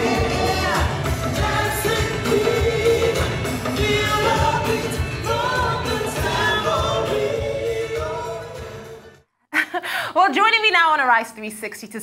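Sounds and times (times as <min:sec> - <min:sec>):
band accompaniment with steady beat: 0:00.0 - 0:08.9
cast singing a pop number: 0:00.0 - 0:09.0
lead voice singing: 0:00.0 - 0:09.2.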